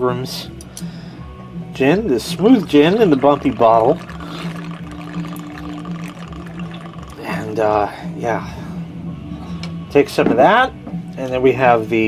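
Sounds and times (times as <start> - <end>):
gin pouring from glass bottle: 2.2 - 7.9.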